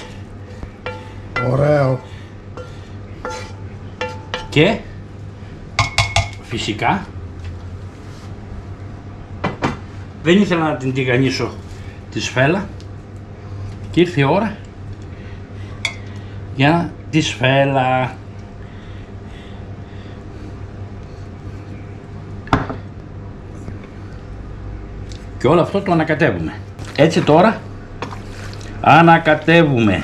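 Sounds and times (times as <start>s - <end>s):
steady low hum: 0.0s - 30.0s
kitchenware clink: 0.9s - 1.6s, 2.6s - 4.6s, 5.8s - 6.4s.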